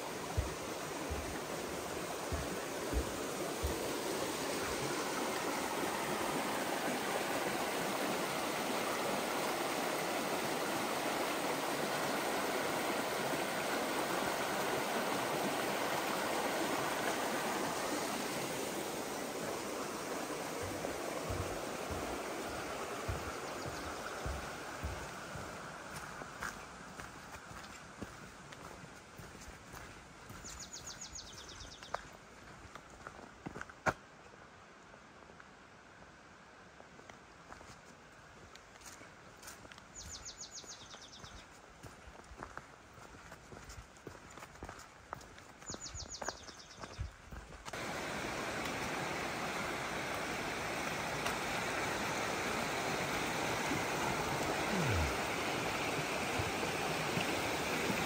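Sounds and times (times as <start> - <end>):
creek running over rocks: 0.0 - 58.0
low footstep thuds: 0.2 - 4.8, 20.6 - 26.6.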